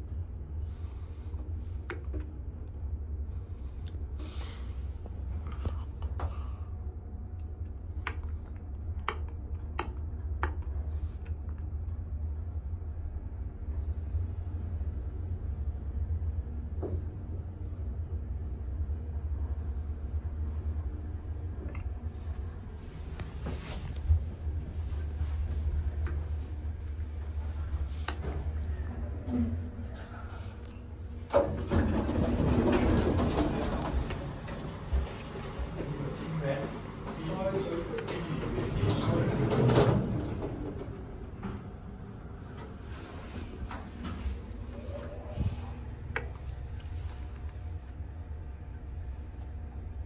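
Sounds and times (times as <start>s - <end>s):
lift car humming: 22.2s - 50.0s.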